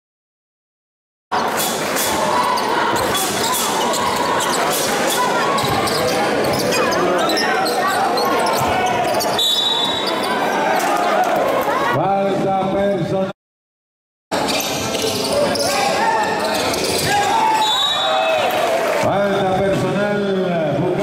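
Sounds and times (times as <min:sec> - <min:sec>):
players and spectators shouting: 0:01.4 - 0:12.3, 0:15.1 - 0:19.2.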